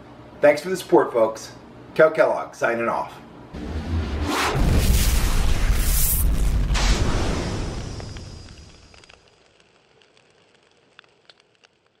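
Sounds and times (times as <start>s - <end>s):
deep explosion rumble: 3.6s - 9.0s
faint crackling clicks: 7.9s - 12.0s.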